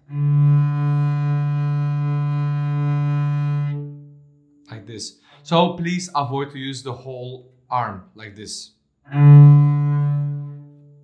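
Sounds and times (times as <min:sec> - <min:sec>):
cello long bowed note: 0:00.0 - 0:04.5, 0:09.1 - 0:11.0.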